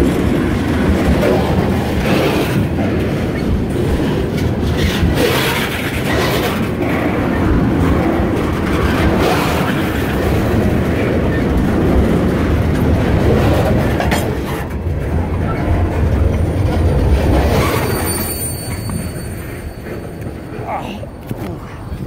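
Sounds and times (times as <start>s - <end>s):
freight train wheels rumbling: 0.0s - 22.0s
high wheel squeal: 17.0s - 22.0s.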